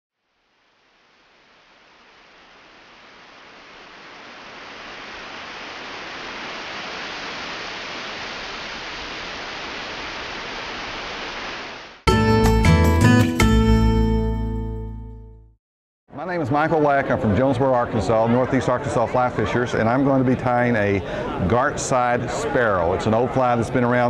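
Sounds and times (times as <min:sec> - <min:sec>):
steady rushing noise: 0:00.4 - 0:12.0.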